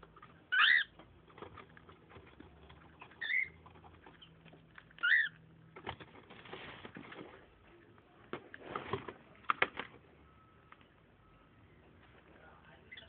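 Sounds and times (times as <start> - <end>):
cockatiel chirps: 0.5 - 0.9, 3.2 - 3.6, 5.0 - 5.4.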